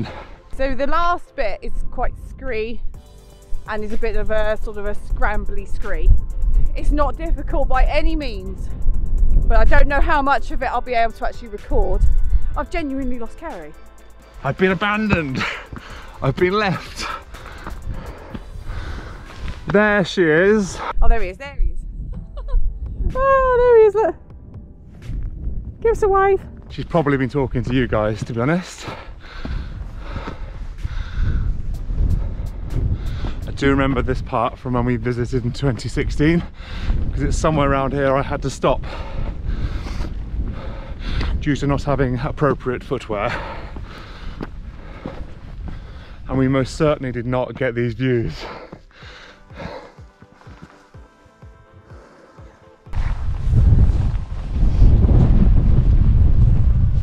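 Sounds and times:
man breathing heavily: 0:00.0 - 0:00.6, 0:12.1 - 0:12.6, 0:13.9 - 0:19.7, 0:28.5 - 0:33.5, 0:36.5 - 0:37.1, 0:38.8 - 0:41.4, 0:43.2 - 0:46.3, 0:48.2 - 0:52.9
soft background music: 0:00.0 - 0:40.5, 0:44.8 - 0:53.4
wind rumbling on microphone: 0:03.6 - 0:13.4, 0:17.0 - 0:19.7, 0:20.7 - 0:47.4, 0:52.9 - 0:57.0.

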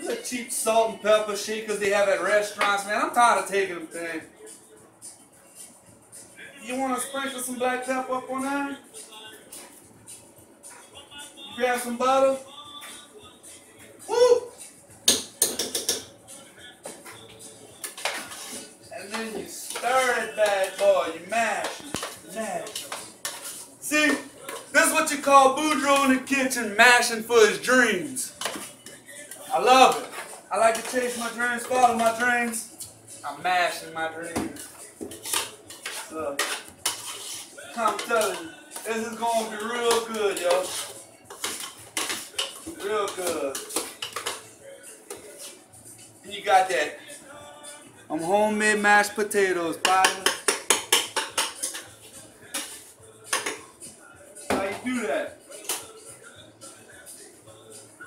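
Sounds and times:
utensil scraping metal saucepan: 0:17.8 - 0:28.9, 0:34.5 - 0:44.5, 0:49.7 - 0:53.6.

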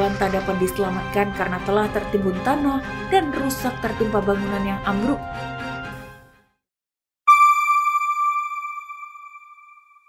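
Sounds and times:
bell-like electronic chime: 0:07.3 - 0:10.0.

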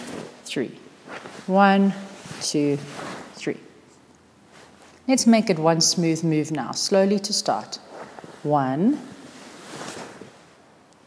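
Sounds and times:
fabric rustling: 0:00.0 - 0:05.1, 0:07.6 - 0:10.8.

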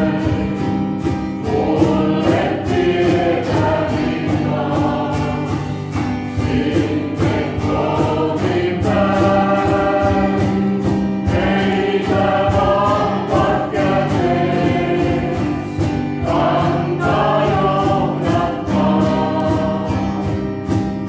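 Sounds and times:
mixed choir singing a hymn: 0:00.0 - 0:20.7
steady beat accompaniment: 0:00.0 - 0:21.0.

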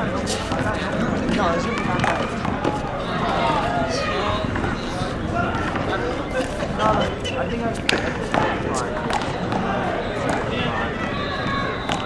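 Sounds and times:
people talking: 0:00.0 - 0:12.0
rubber ball bouncing on concrete: 0:07.8 - 0:09.7.

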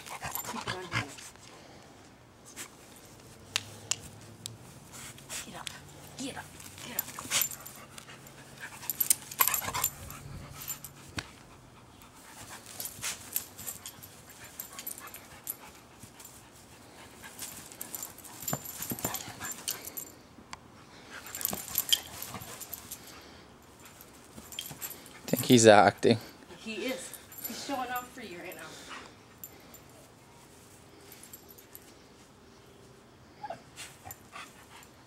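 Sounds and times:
dog playing: 0:00.0 - 0:01.5, 0:02.5 - 0:20.2, 0:20.8 - 0:32.2.

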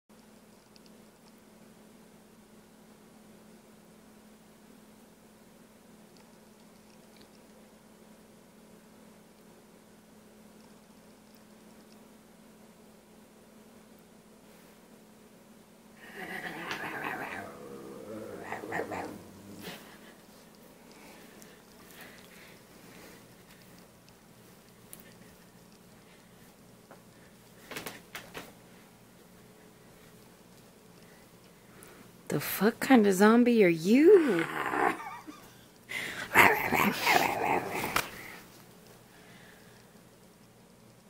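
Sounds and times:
man growling like a bear: 0:16.0 - 0:20.0, 0:34.2 - 0:35.4, 0:36.2 - 0:38.4.

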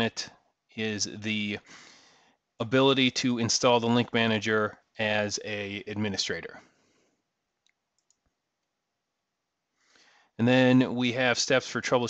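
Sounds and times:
computer mouse clicks: 0:07.6 - 0:08.3.

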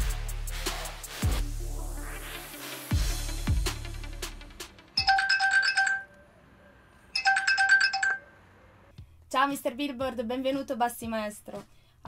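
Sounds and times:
fast electronic ringtone beeps: 0:05.0 - 0:06.1, 0:07.2 - 0:08.3.

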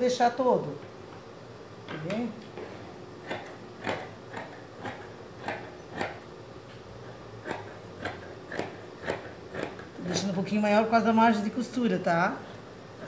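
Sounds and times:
scissors snipping fabric: 0:03.2 - 0:06.2, 0:07.4 - 0:10.3.

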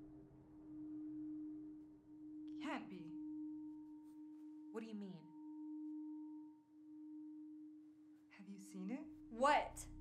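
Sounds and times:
dialogue: 0:02.5 - 0:04.0, 0:08.3 - 0:10.0.

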